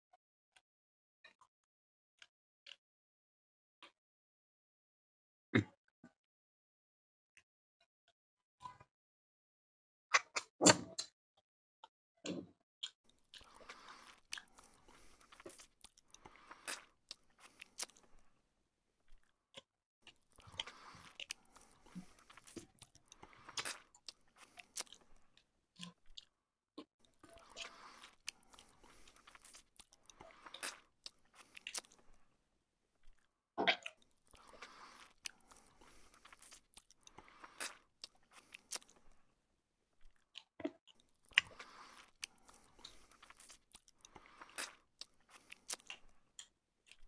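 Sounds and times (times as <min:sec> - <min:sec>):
person chewing pizza: 0:12.8 - 0:18.3, 0:19.1 - 0:26.4, 0:27.0 - 0:32.4, 0:33.0 - 0:39.3, 0:40.0 - 0:47.0.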